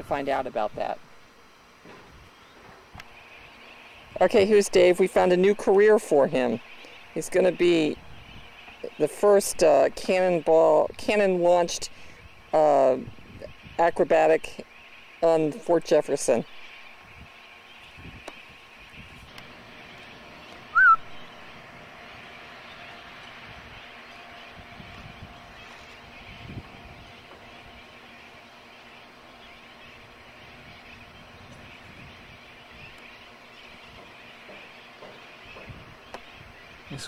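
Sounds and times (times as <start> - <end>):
loud chirp: 16.5 - 37.0.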